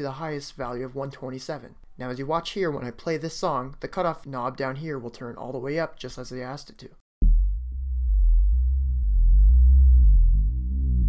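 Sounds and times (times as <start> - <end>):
muffled deep synthesizer bass pulse: 7.2 - 11.0.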